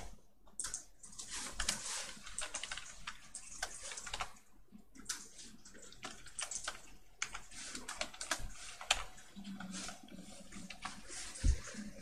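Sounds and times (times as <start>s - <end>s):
computer keyboard typing: 0.0s - 11.9s.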